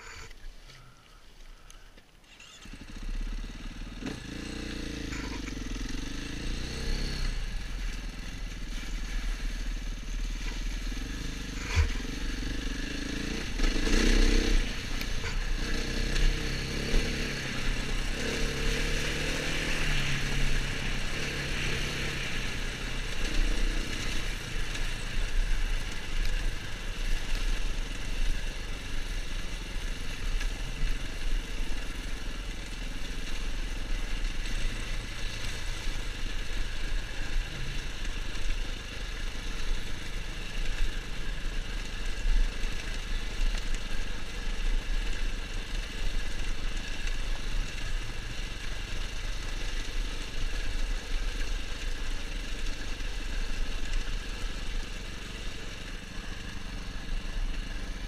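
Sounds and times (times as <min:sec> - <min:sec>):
motorcycle engine at low revs: 0:00.0 - 0:58.0.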